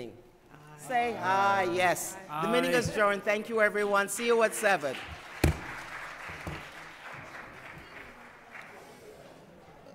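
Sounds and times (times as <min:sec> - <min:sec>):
scattered applause: 0:04.0 - 0:09.4.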